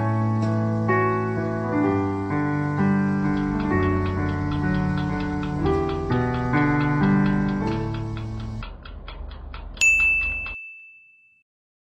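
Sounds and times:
quick even ticking: 0:03.0 - 0:10.6
high bell-like ding: 0:09.8 - 0:11.4.

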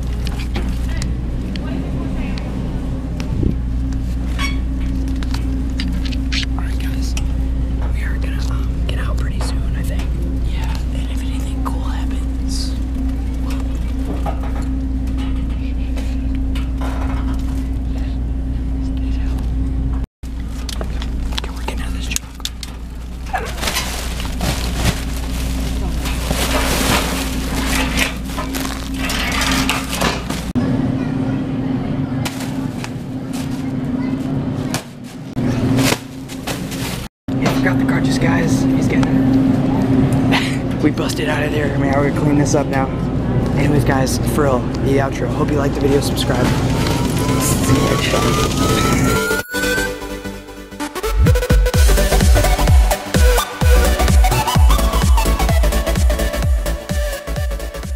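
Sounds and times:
low hum: 0:00.0 - 0:33.2
plastic packaging rustling: 0:22.8 - 0:30.5.

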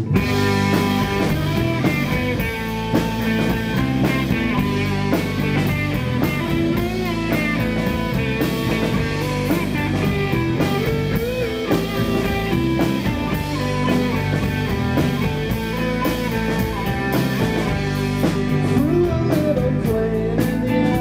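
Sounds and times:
bending guitar notes: 0:00.0 - 0:21.0
rock band playing live: 0:00.0 - 0:21.0.

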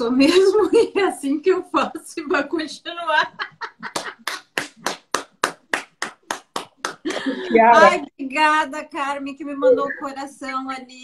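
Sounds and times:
woman clapping hands: 0:03.8 - 0:07.4.

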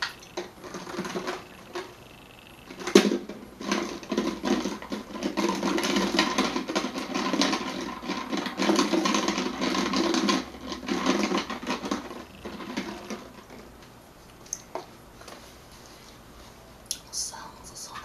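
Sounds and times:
plastic bottle crinkling: 0:00.0 - 0:01.9, 0:02.7 - 0:13.7.

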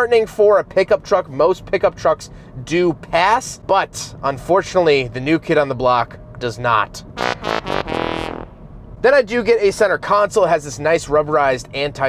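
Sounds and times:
brassy comedy fail sound effect: 0:07.2 - 0:08.6.

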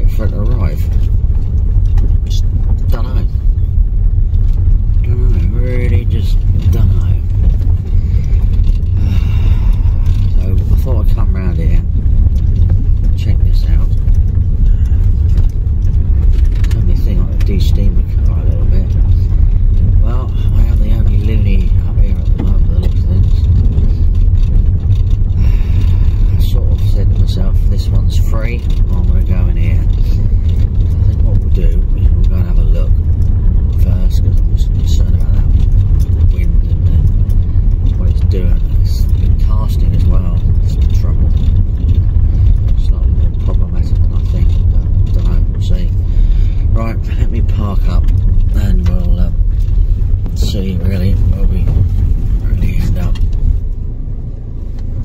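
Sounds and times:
car driving on dirt track: 0:00.0 - 0:55.0.

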